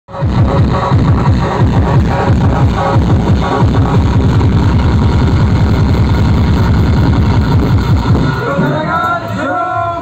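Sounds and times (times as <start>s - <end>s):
distorted bass thuds: 0.1s - 9.3s.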